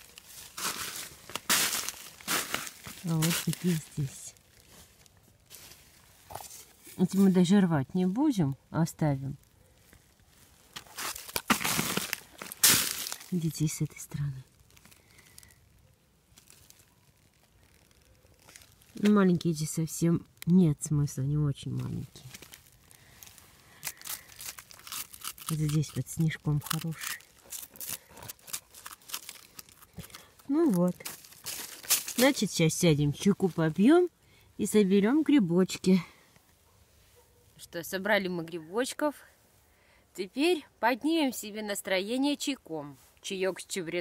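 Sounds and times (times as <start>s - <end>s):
sharp crackles: 0.0s - 7.2s, 9.3s - 21.0s, 21.6s - 34.1s
footsteps in snow and leaves: 0.0s - 7.7s, 9.1s - 15.6s, 16.3s - 19.6s, 21.7s - 34.1s.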